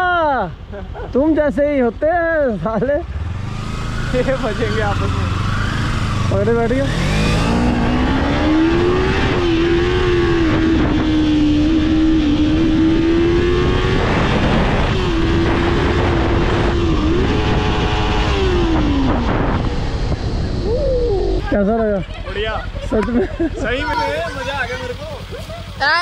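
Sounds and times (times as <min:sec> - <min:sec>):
motorcycle engine: 0:02.3 - 0:26.0
wind rushing over microphone: 0:05.0 - 0:21.6.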